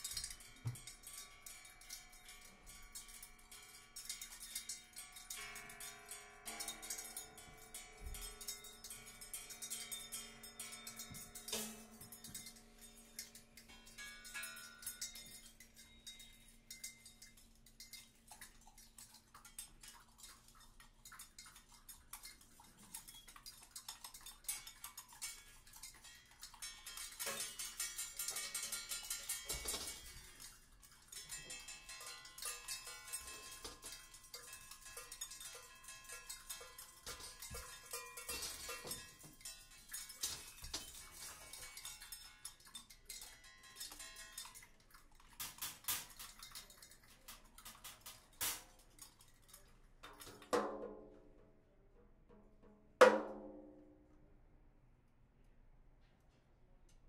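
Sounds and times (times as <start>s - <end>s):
small percussion taps and rattles: 0.0s - 51.5s.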